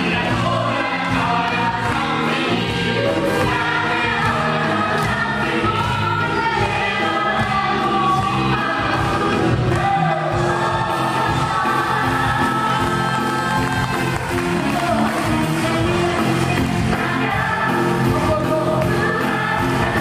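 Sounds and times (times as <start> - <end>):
musical accompaniment: 0.0 - 20.0.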